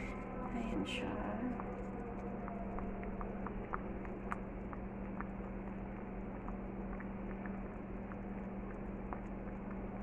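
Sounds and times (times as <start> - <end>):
steady low hum: 0.0 - 10.0
broth bubbling at a boil: 1.3 - 10.0.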